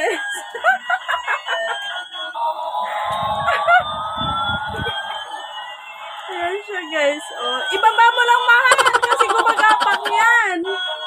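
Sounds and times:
toy electronic siren sound: 2.7s - 11.0s
low rumble: 2.9s - 5.8s.

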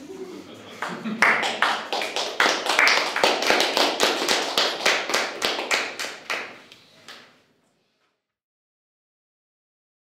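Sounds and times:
hand clapping: 0.8s - 7.3s.

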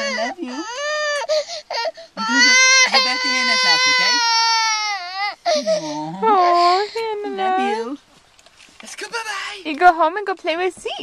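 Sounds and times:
toddler crying: 0.0s - 8.0s.

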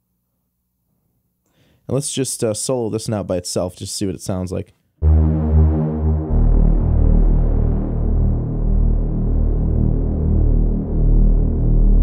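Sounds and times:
throbbing synth bass drone: 5.0s - 12.0s.

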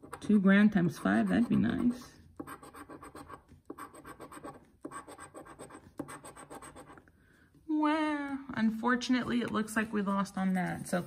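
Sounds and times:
scratching lottery ticket: 0.0s - 7.0s.

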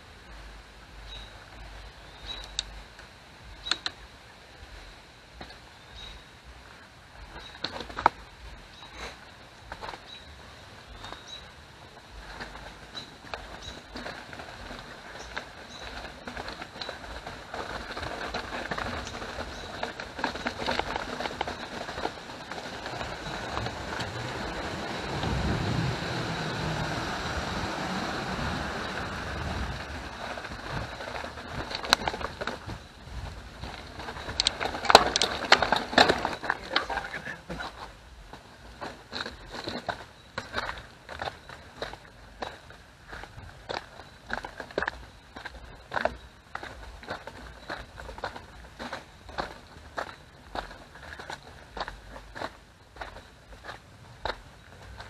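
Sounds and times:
bike tyres rumbling on wooden bridge: 0.0s - 55.0s
footsteps: 6.6s - 55.0s
bike clattering over rocks: 10.9s - 55.0s.

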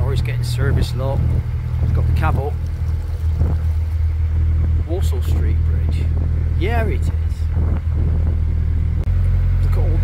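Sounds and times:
boat engine droning: 0.0s - 10.0s.

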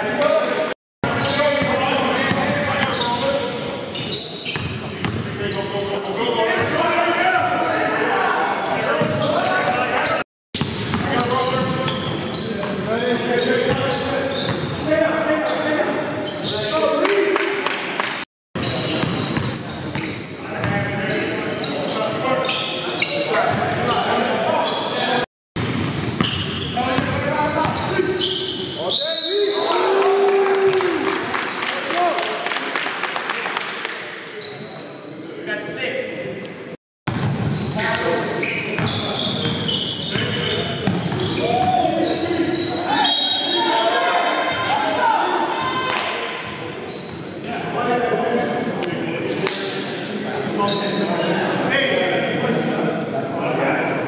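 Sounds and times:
players' voices echoing: 0.0s - 54.0s.

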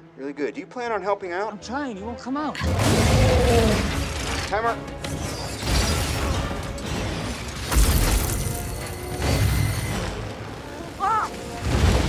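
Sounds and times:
orchestral score: 0.0s - 7.8s, 8.4s - 12.0s.

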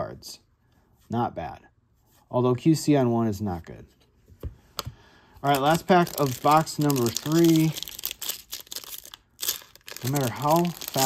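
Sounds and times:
foil wrapper crinkling and tearing: 5.4s - 11.0s.

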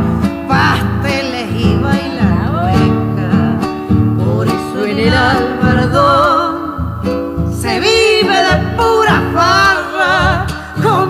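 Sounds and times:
acoustic guitars strummed: 0.0s - 11.0s
person singing: 0.0s - 11.0s.

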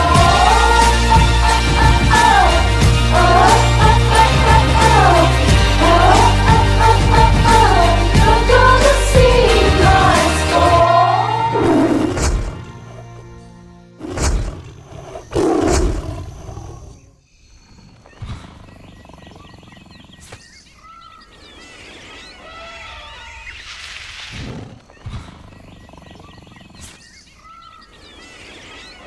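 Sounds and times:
big cat roaring: 14.0s - 17.1s
wildlife animal calls: 14.0s - 23.8s, 24.4s - 29.0s.

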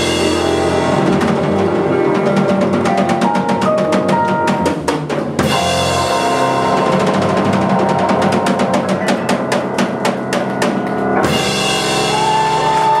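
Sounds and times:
jazz band playing: 0.0s - 13.0s
rapid drum strokes: 0.0s - 13.0s.

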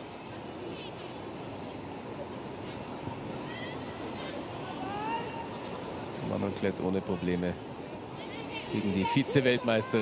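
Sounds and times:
murmur of spectators: 0.0s - 10.0s.

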